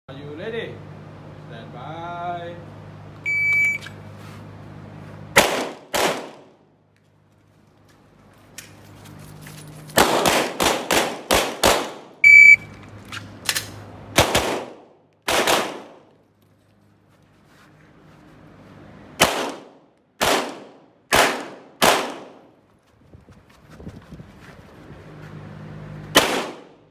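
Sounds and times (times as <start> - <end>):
handgun shots with ringing echo: 5.4 - 6.4, 14.2 - 16.0, 19.2 - 22.4, 26.2 - 26.8.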